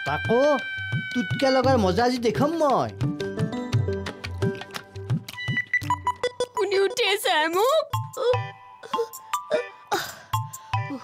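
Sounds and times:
percussive background music: 0.0 - 11.0
woman sobbing: 7.6 - 11.0.

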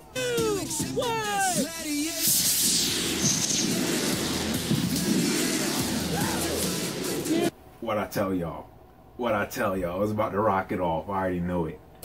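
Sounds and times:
background music: 0.0 - 7.5
rocket motor whoosh: 2.2 - 7.4.

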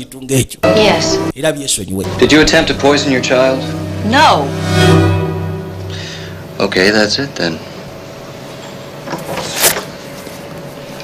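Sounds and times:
faint steady hum: 0.6 - 9.0.

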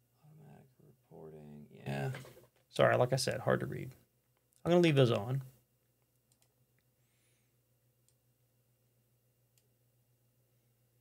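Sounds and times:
computer mouse clicks: 6.1 - 6.6.

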